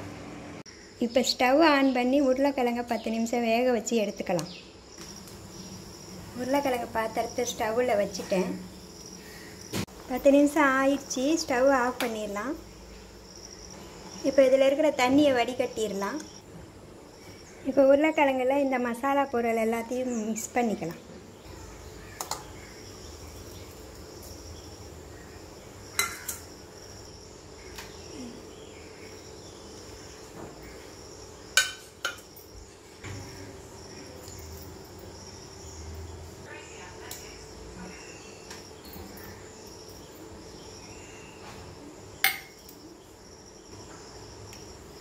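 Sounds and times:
insects chirping: 0:00.7 - 0:45.0.

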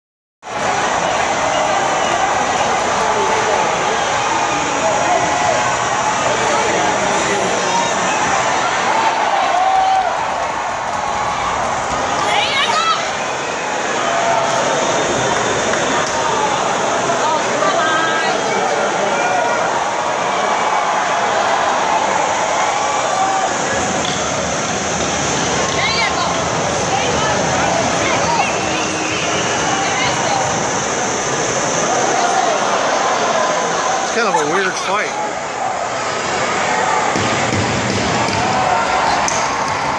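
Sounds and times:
crowd talking and calling out: 0:00.4 - 0:39.9.

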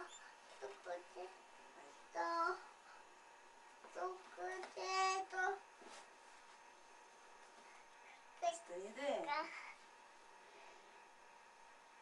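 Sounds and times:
child's sing-song voice: 0:00.0 - 0:02.7, 0:03.9 - 0:05.6.

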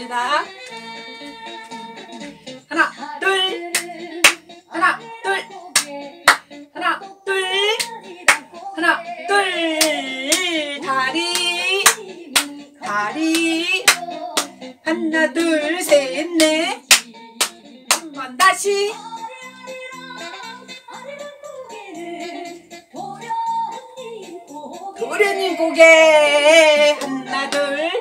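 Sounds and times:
upbeat pop song with singing: 0:00.0 - 0:28.0
sharp hand claps: 0:03.7 - 0:04.5, 0:05.7 - 0:06.5, 0:07.8 - 0:08.5, 0:11.3 - 0:12.6, 0:13.3 - 0:14.6, 0:16.4 - 0:18.1, 0:27.0 - 0:27.7.

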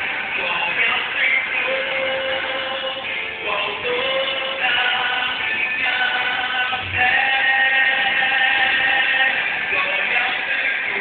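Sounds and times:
musical accompaniment: 0:00.0 - 0:11.0
man singing gospel: 0:00.2 - 0:11.0.

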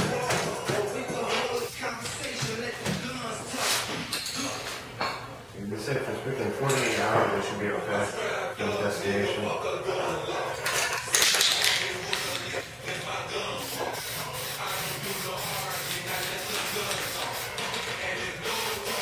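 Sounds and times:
aerosol spray can hissing: 0:13.6 - 0:19.0.

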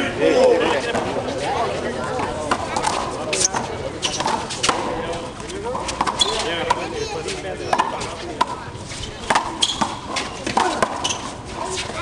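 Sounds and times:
ball hitting concrete walls: 0:02.4 - 0:07.0, 0:07.7 - 0:08.6, 0:09.2 - 0:12.0.

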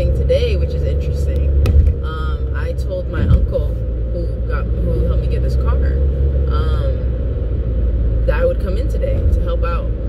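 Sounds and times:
woman talking: 0:00.0 - 0:07.1, 0:08.2 - 0:10.0
car cabin road rumble: 0:00.0 - 0:10.0.

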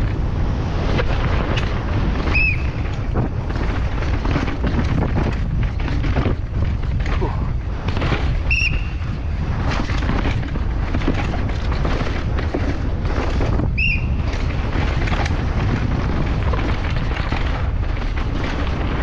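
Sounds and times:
mountain bike rumbling and rattling: 0:00.0 - 0:19.0
wind buffeting microphone: 0:00.0 - 0:19.0
tyres knocking on roots and rocks: 0:01.1 - 0:08.5.

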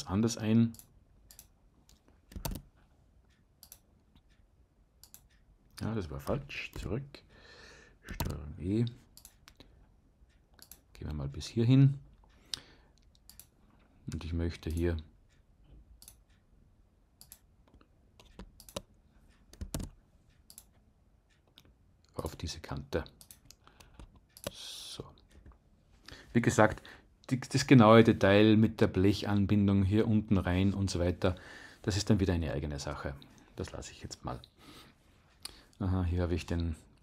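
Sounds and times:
computer mouse and keyboard clicks: 0:00.7 - 0:02.8, 0:08.1 - 0:08.4, 0:17.2 - 0:20.8, 0:23.2 - 0:24.6
computer mouse clicks: 0:00.7 - 0:04.4, 0:05.0 - 0:06.9, 0:08.1 - 0:08.4, 0:09.1 - 0:09.7, 0:10.4 - 0:10.9, 0:13.0 - 0:14.9, 0:16.0 - 0:16.4, 0:17.2 - 0:21.7, 0:23.1 - 0:24.6.

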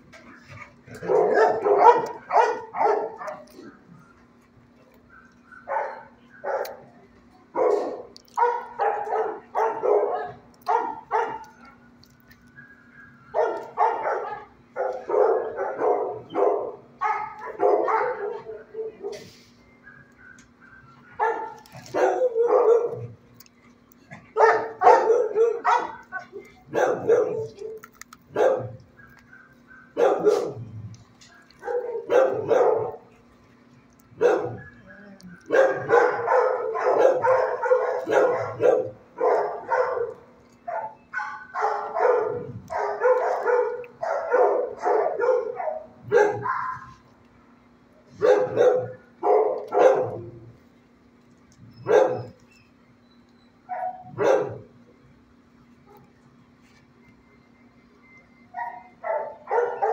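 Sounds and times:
dogs barking: 0:00.2 - 0:04.2, 0:04.8 - 0:12.0, 0:12.6 - 0:33.2, 0:33.9 - 0:34.8, 0:35.4 - 0:47.1, 0:48.0 - 0:50.6, 0:51.8 - 0:52.4, 0:53.6 - 0:54.8, 0:58.5 - 0:59.9.

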